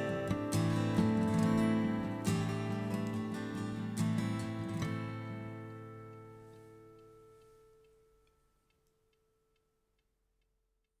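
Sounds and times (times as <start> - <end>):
faint steady ticking: 0.0 - 11.0.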